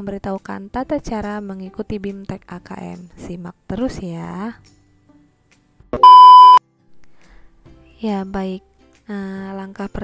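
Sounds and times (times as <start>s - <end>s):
high-pitched test tone beep: 6.0s - 6.6s.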